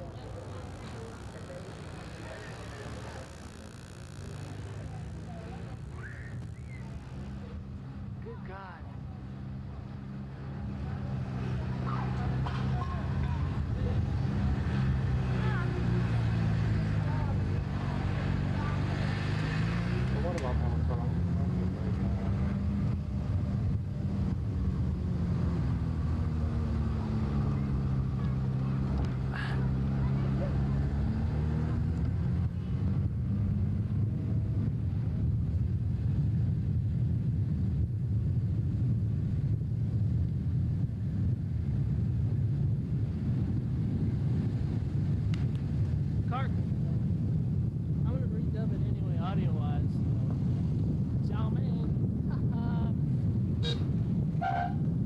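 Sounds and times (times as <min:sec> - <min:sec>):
road noise: 0:00.0 - 0:55.0
vehicle engine driving: 0:00.0 - 0:55.0.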